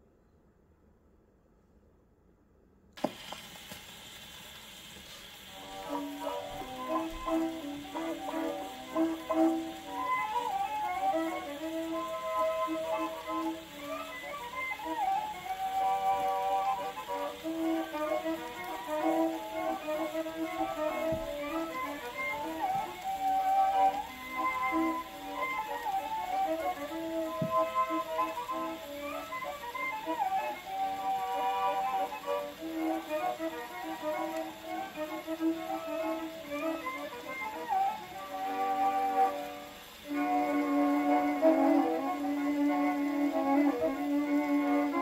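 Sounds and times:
record surface hiss: 0:00.0 - 0:45.0
violin and accordion waltz: 0:05.8 - 0:45.0.

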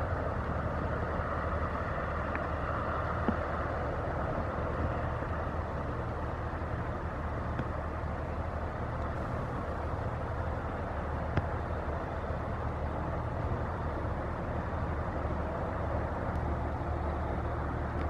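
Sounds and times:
rushing water: 0:00.0 - 0:18.0
ship diesel engine rumble: 0:00.0 - 0:18.0.

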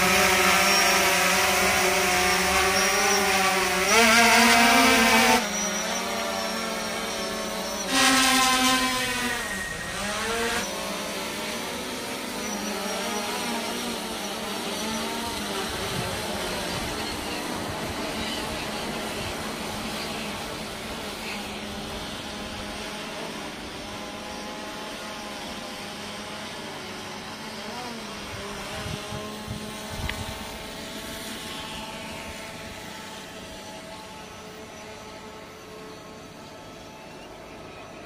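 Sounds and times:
drone propellers whining: 0:00.0 - 0:38.0.

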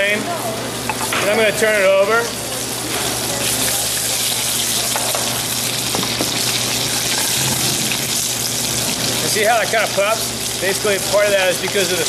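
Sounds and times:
fish sizzling in a frying pan: 0:00.7 - 0:12.0.

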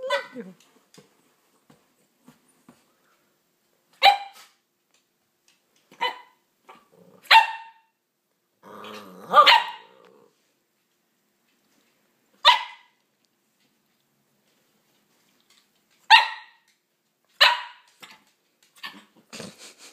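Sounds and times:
dog barking: 0:04.0 - 0:04.5, 0:06.0 - 0:06.4, 0:07.3 - 0:07.9, 0:09.3 - 0:09.9, 0:12.4 - 0:12.9, 0:16.1 - 0:16.6, 0:17.4 - 0:17.9
dog growling: 0:06.7 - 0:07.3, 0:08.6 - 0:10.4.

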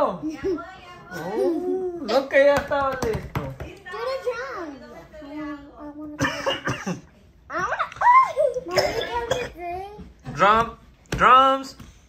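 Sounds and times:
girls coughing: 0:06.2 - 0:07.1, 0:08.6 - 0:09.7.

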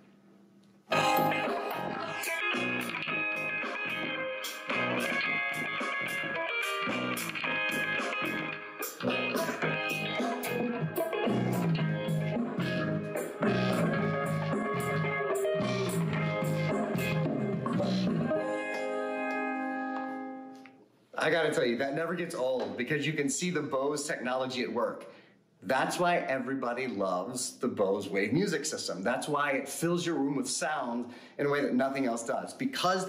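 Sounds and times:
guitar instrumental music: 0:00.9 - 0:20.9.

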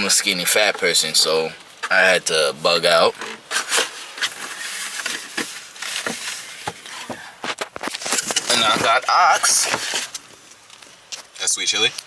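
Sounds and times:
cardboard box and paper handled: 0:03.4 - 0:10.4.

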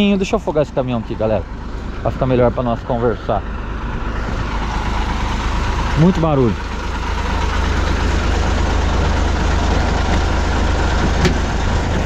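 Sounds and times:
diesel engine idling: 0:00.0 - 0:12.0
truck door click: 0:11.0 - 0:12.0.

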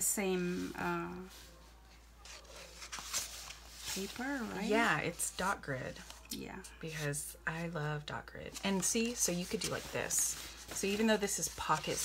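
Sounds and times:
paper notebooks rubbing and sliding: 0:02.2 - 0:06.2, 0:08.5 - 0:12.0.

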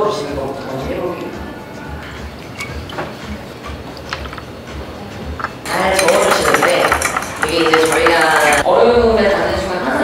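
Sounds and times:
glass bottle clicks and knocks: 0:05.4 - 0:08.6.

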